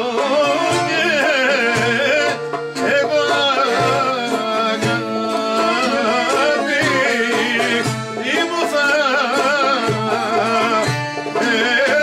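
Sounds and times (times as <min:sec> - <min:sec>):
man singing folk song: 0:00.0 - 0:12.0
strummed lute: 0:00.0 - 0:12.0.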